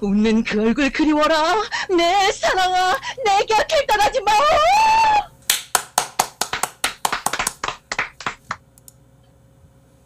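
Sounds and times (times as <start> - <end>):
people clapping: 5.5 - 8.6.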